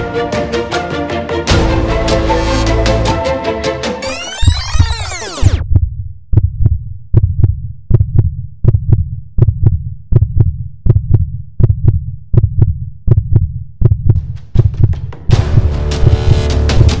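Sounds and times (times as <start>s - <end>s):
heartbeat thumps: 5.5s - 17.0s.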